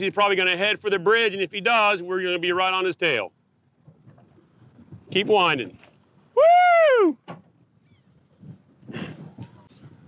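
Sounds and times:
man's excited whoop: 6.4 - 7.2.

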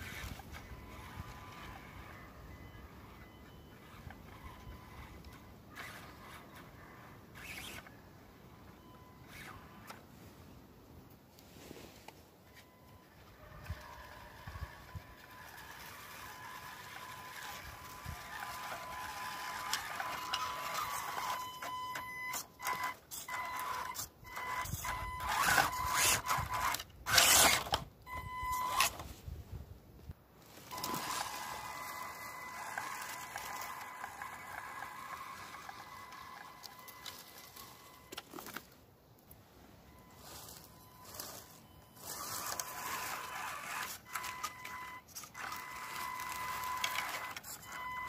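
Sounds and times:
electric motor whining: 13.3 - 21.4, 22.3 - 27.8, 30.7 - 38.2, 42.0 - 47.8
tyres crunching over leaves and sticks: 30.4 - 38.8, 40.0 - 44.8.

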